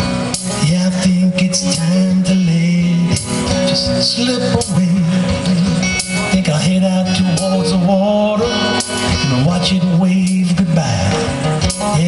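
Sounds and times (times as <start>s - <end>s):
acoustic guitar strumming: 0.0s - 12.0s
low bass line: 0.0s - 12.0s
man singing: 0.3s - 12.0s.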